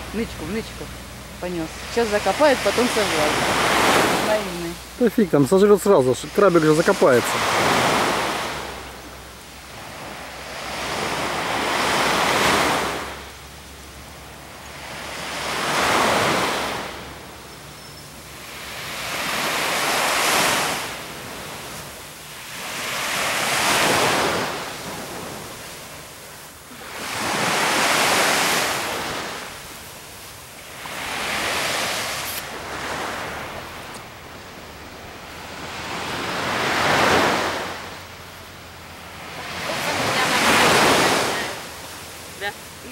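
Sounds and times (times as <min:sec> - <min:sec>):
small waves breaking on sand: 0:00.0 - 0:42.9.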